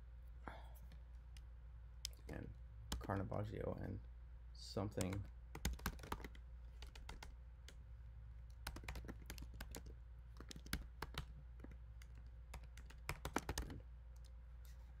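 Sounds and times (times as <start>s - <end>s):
computer keyboard typing: 2.9s - 3.2s, 4.9s - 7.8s, 8.6s - 14.3s.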